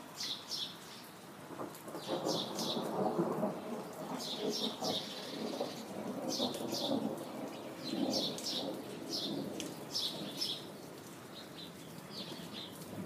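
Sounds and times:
rolling thunder: 0:01.5 - 0:10.8
bird chirping: 0:11.4 - 0:12.8.

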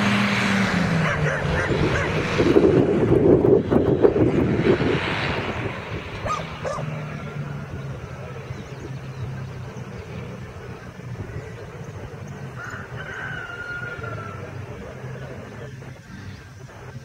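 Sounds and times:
distant paramotor engine drone: 0:00.0 - 0:17.0.

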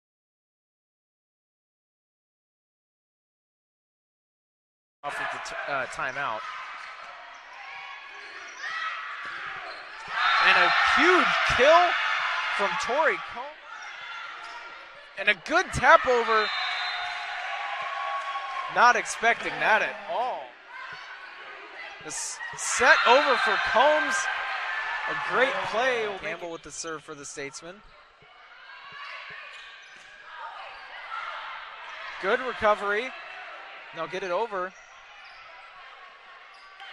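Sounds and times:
crowd of spectators' voices: 0:05.0 - 0:36.9.

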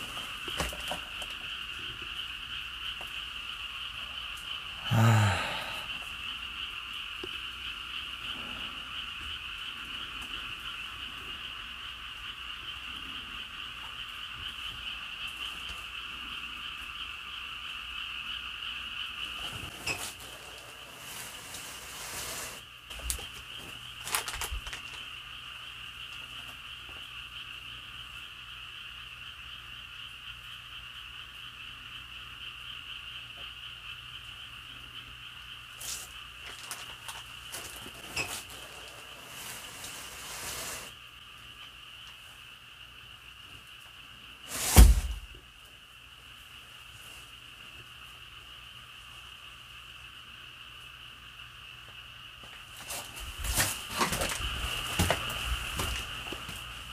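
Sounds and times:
frogs calling: 0:00.0 - 0:56.9.

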